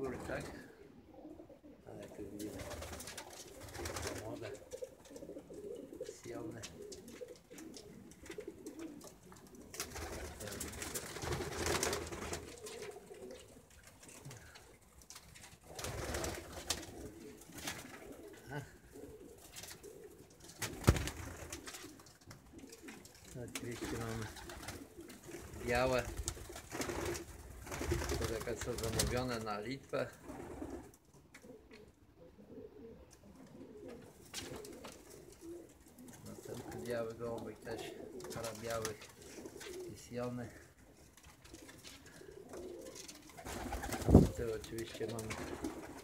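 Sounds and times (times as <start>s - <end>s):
pigeons cooing: 0.0s - 15.0s, 15.6s - 46.0s
rustling: 2.3s - 29.6s, 33.2s - 46.0s.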